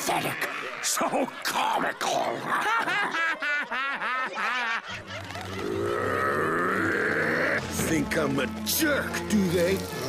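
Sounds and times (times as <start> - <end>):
cartoon character cackling laugh: 2.4 - 6.2.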